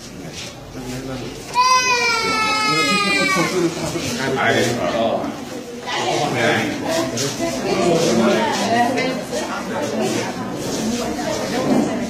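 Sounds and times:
people talking: 0.2 - 12.0
infant crying: 1.6 - 3.7.

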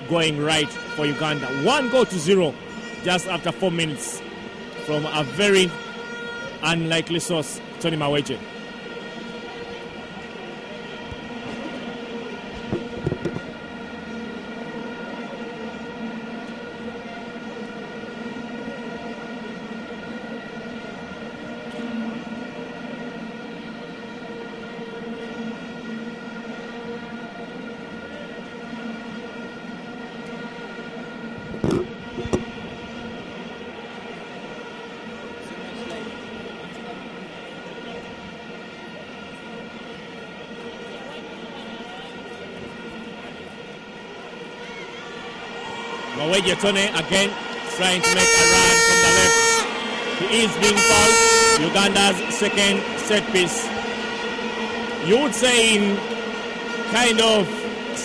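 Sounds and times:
stadium crowd drone: 0.0 - 58.0.

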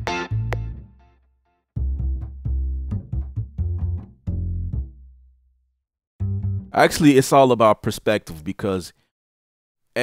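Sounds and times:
low plucked bass notes: 0.0 - 1.0, 1.8 - 5.2, 6.2 - 6.8.

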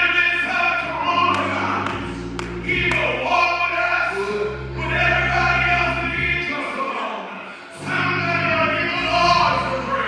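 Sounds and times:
organ chords: 0.0 - 10.0.

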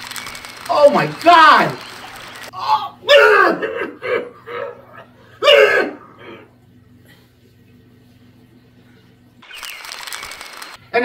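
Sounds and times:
person making wordless outbursts: 2.5 - 6.2.

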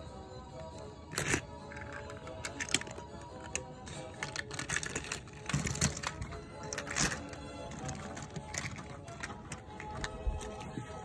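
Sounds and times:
plastic toy pieces clicking: 0.7 - 10.9.

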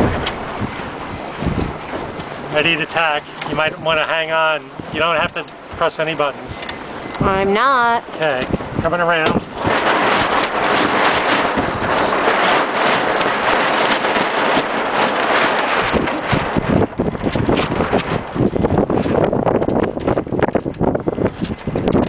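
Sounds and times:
low rumbling: 0.0 - 22.0
wind buffeting microphone: 0.0 - 22.0.

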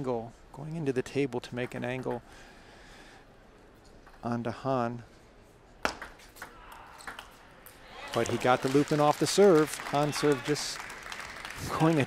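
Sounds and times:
table tennis ball rally: 5.8 - 10.8.

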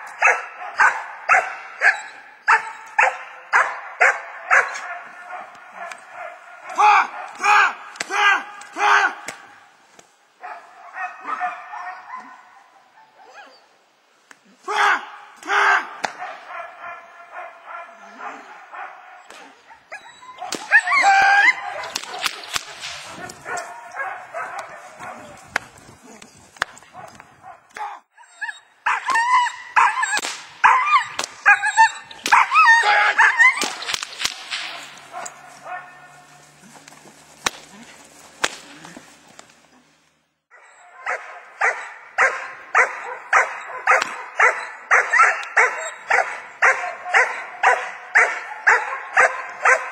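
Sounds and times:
puppy barking and yelping: 0.1 - 6.5, 10.4 - 13.7, 16.2 - 25.3, 28.1 - 33.9, 40.5 - 49.9
puppy yipping and whining: 1.8 - 3.1, 19.9 - 21.9, 28.1 - 33.9, 40.5 - 42.3
sharp clicks: 33.6 - 35.4.

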